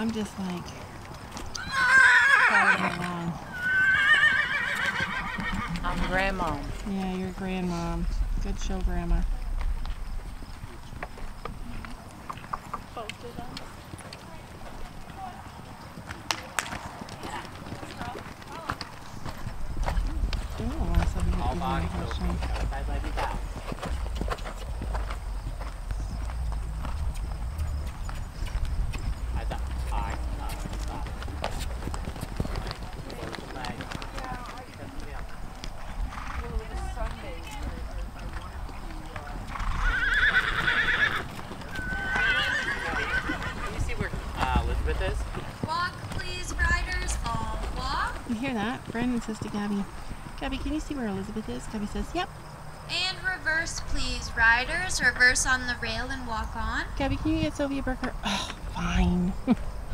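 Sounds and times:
hoofbeats on sand: 0.0 - 53.2
horse whinnying: 1.5 - 6.8, 36.1 - 36.5, 39.4 - 44.2
low rumble: 5.8 - 12.1, 19.5 - 32.1.

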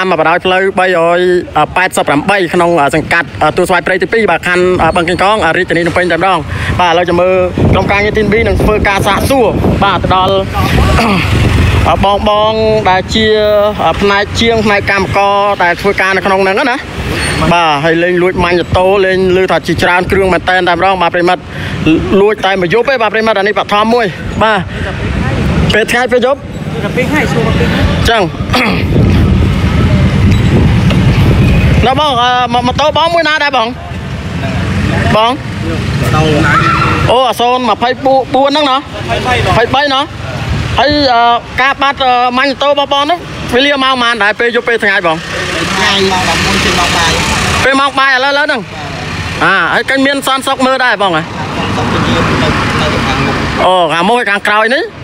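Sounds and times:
men talking: 0.0 - 55.0
street traffic rumble: 0.0 - 55.0.

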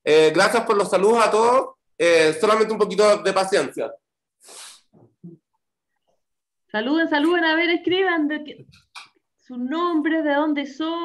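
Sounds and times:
breath hiss: 4.4 - 5.0.

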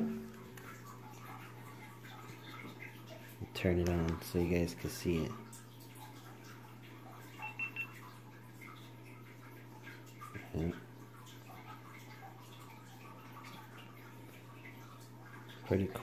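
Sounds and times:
low steady hum: 0.0 - 16.0
camera high beeps: 7.4 - 8.0.

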